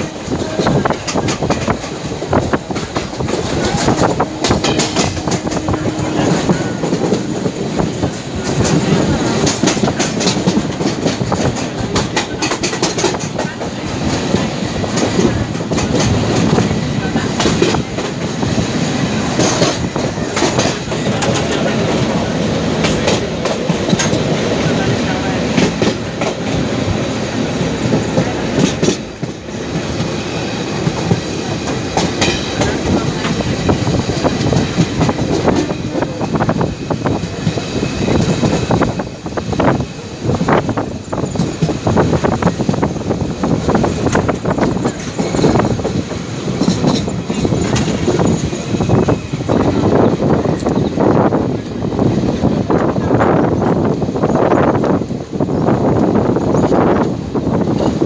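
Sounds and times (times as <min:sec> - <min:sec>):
wheels clacking over rail joints: 0:00.0 - 0:51.0
train coaches rumbling and rattling: 0:00.0 - 0:58.0.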